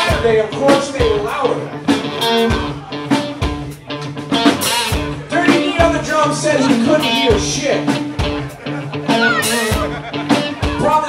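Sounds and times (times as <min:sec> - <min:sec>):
drum kit strikes: 0:00.0 - 0:11.0
electric guitar: 0:00.0 - 0:11.0.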